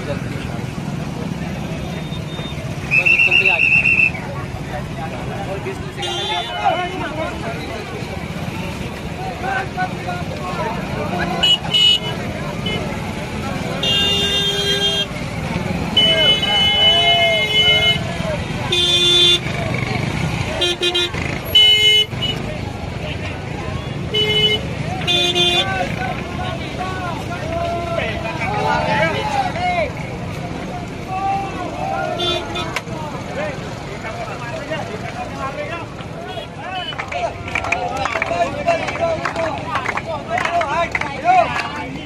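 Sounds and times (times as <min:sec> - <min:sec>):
crowd chatter: 0:00.0 - 0:42.0
vehicle horns honking: 0:05.9 - 0:07.1, 0:11.3 - 0:13.0, 0:13.7 - 0:15.2, 0:15.8 - 0:19.6, 0:20.5 - 0:22.5, 0:23.8 - 0:26.0, 0:32.1 - 0:32.8.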